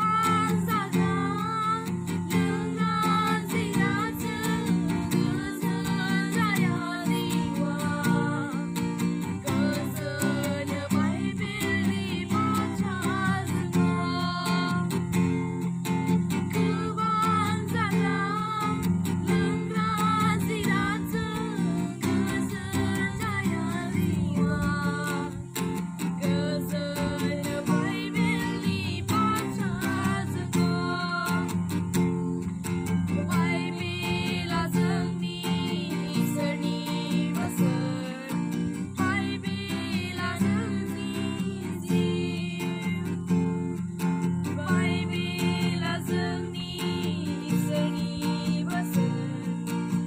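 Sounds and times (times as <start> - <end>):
boy singing: 0.0 - 15.2, 16.3 - 31.9, 33.1 - 43.3, 44.5 - 50.0
acoustic guitar strumming: 0.0 - 50.0.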